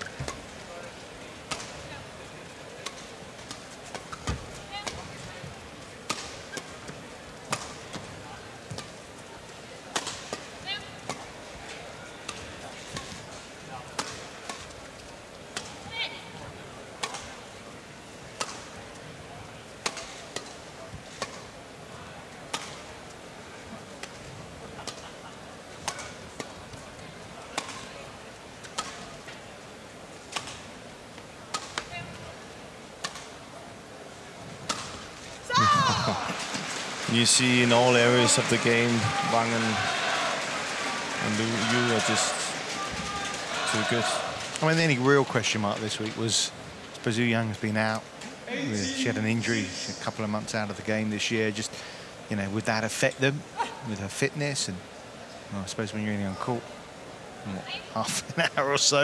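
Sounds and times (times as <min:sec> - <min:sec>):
arena crowd noise: 0:00.0 - 0:59.0
rackets striking shuttlecock: 0:01.4 - 0:01.9, 0:06.0 - 0:08.1, 0:09.9 - 0:11.3, 0:13.9 - 0:14.8, 0:17.0 - 0:17.4, 0:18.4 - 0:19.0, 0:19.8 - 0:20.6, 0:27.5 - 0:27.9, 0:28.6 - 0:29.1, 0:30.3 - 0:30.6, 0:31.5 - 0:32.0, 0:33.0 - 0:33.4, 0:34.6 - 0:35.0.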